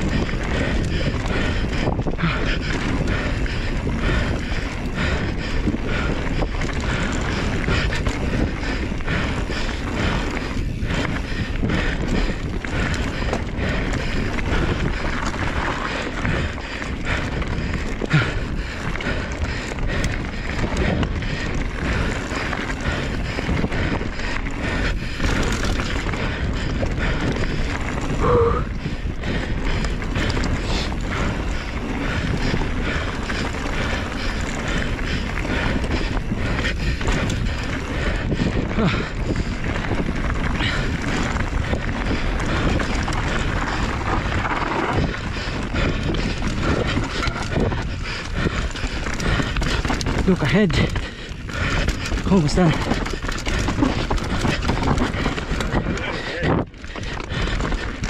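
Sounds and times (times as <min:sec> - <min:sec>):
bike rattling and knocking: 0:00.0 - 0:58.0
bike tyre noise: 0:00.0 - 0:58.0
wind rush on microphone: 0:00.0 - 0:58.0.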